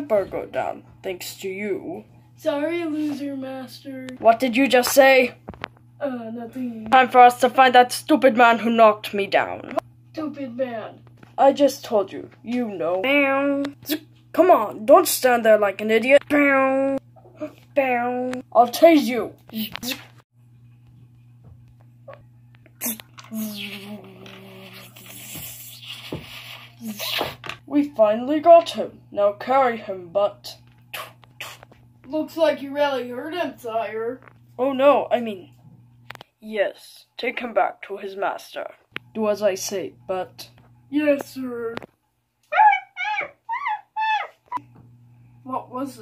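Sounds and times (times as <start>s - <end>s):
voice making buzzing zap: 30.9s - 31.8s
monkey cries: 42.5s - 44.6s.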